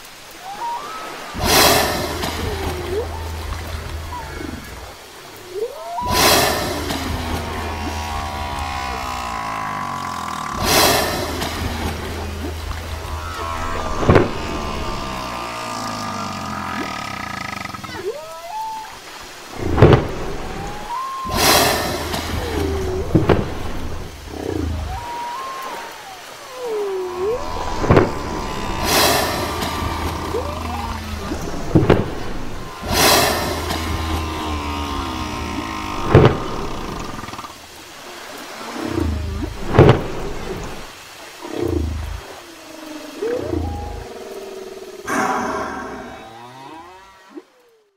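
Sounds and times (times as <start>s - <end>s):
whale song moans and whoops: 0.1s - 19.4s, 20.2s - 37.5s, 41.4s - 47.9s
loud whale blasts: 0.2s - 18.7s, 19.5s - 37.4s, 38.2s - 47.6s.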